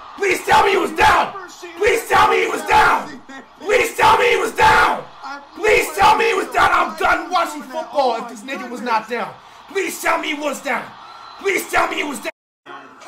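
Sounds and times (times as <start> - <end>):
man yelling and screaming: 0.2 - 5.0.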